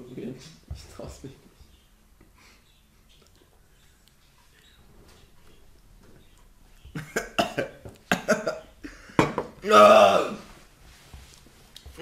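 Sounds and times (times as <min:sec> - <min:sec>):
person coughing: 0:07.0 - 0:08.6.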